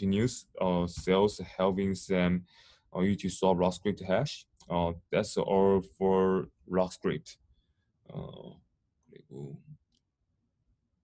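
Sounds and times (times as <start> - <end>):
man saying uh: 0.0 - 2.4, 8.1 - 8.5
short vocal sound: 8.1 - 8.5.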